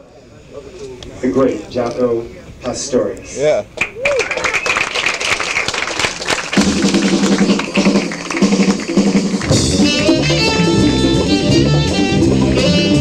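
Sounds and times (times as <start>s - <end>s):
audience applauding and cheering: 3.8s - 10.7s
jazz band playing: 6.5s - 13.0s.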